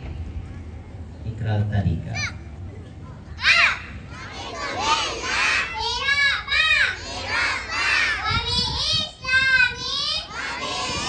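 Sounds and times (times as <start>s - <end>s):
child calling into a microphone: 2.1s - 2.6s, 5.7s - 7.0s, 8.1s - 11.0s
children speaking together: 2.2s - 11.0s.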